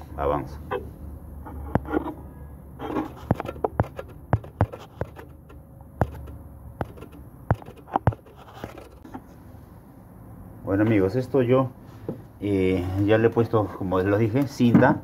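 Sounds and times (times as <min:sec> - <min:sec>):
hand scraping resin bust: 0:01.4 - 0:09.3
sharp clicks and taps: 0:03.2 - 0:08.4.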